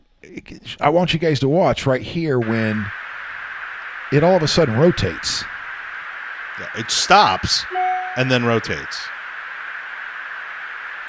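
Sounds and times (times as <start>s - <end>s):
intercom hiss: 2.4s - 3.1s, 4.1s - 5.5s, 6.6s - 9.1s.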